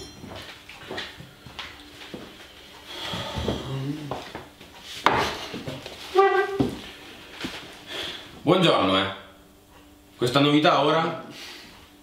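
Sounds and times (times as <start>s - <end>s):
chair squeak: 6.1s - 6.8s
chair dragged on tiled floor: 6.1s - 6.9s
wooden chair knocking: 6.2s - 6.8s.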